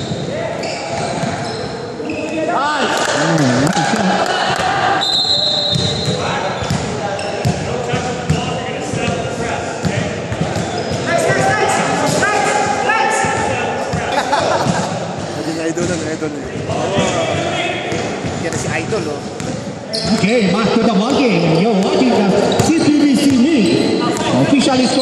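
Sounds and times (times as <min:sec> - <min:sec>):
sneakers squeaking: 0:00.0 - 0:02.5, 0:03.1 - 0:12.3, 0:13.2 - 0:25.0
players' voices echoing: 0:00.0 - 0:25.0.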